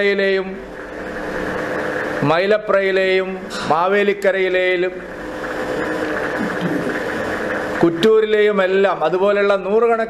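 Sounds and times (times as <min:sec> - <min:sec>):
steady rushing ventilation noise: 0:00.0 - 0:10.0.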